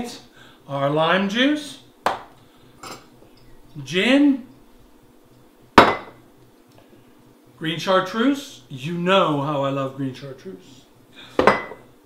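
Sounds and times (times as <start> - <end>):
glass bottle knocking on counter: 5.8 - 6.2.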